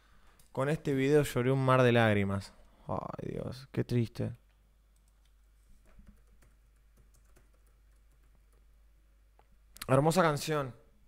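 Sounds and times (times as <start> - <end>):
keyboard typing: 4.9 - 8.7.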